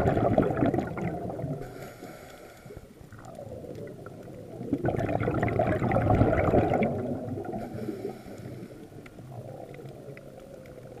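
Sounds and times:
muffled underwater rumble: 0.0 - 11.0
faint clicks: 1.6 - 4.9, 7.4 - 11.0.

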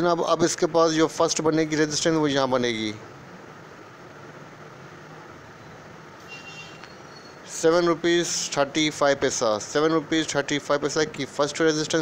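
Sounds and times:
steady background noise: 0.0 - 12.0.

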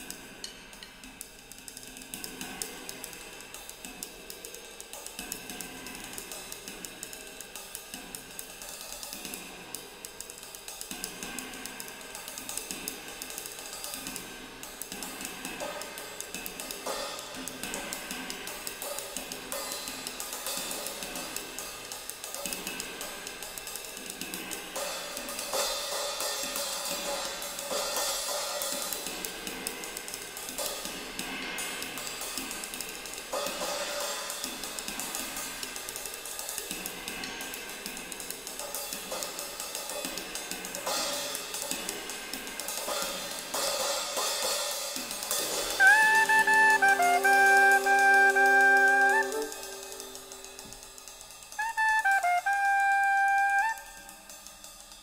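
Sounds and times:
ride cymbal and hi-hat wash: 0.0 - 45.8, 49.2 - 51.6, 53.8 - 55.0
snare and tom strokes: 0.0 - 55.0.

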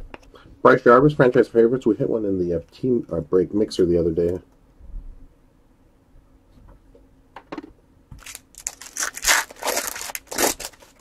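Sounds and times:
foil wrapper tearing and crinkling: 8.2 - 11.0.

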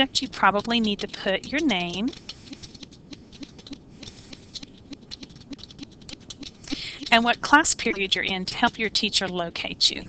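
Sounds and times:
typing on computer keyboard: 0.0 - 9.8.

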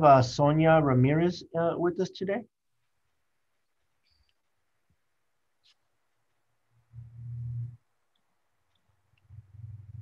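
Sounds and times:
short low hum: 6.8 - 7.8.

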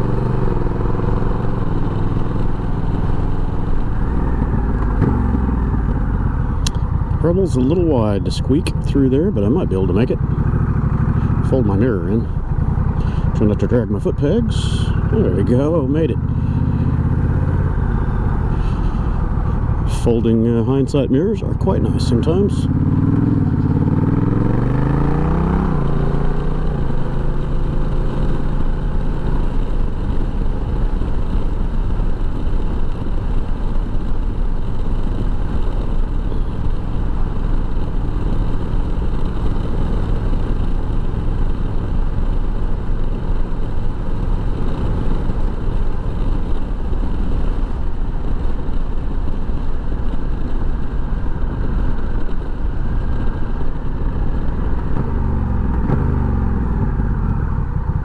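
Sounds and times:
motorcycle engine accelerating: 0.0 - 58.0
wind noise: 0.0 - 58.0.

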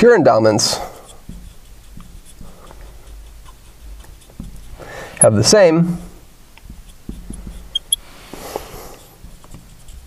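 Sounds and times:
marker writing on glass: 0.6 - 10.0.

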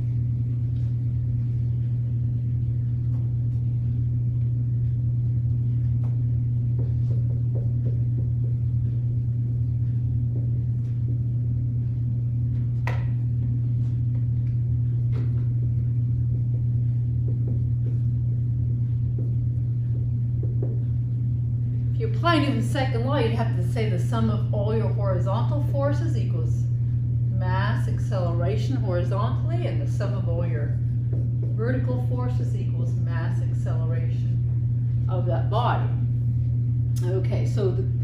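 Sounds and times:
low hum: 0.0 - 38.0.

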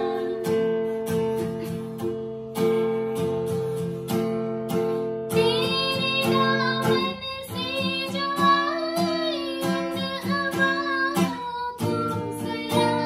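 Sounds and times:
woman singing: 0.0 - 2.0, 5.3 - 13.0
acoustic guitar strumming: 0.0 - 13.0.

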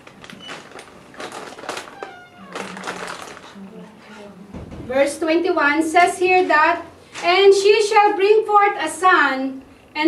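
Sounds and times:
thin pages rustling: 0.1 - 3.6.

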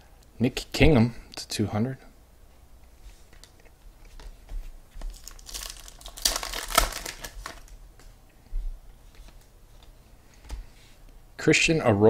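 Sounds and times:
cards crinkling and rustling: 5.0 - 7.8.

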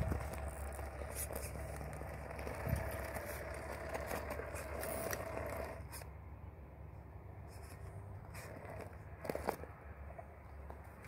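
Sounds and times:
tyres scraping over stones: 0.0 - 6.1, 7.6 - 11.0
electric motor and gears whining: 0.0 - 6.2, 7.6 - 11.0.

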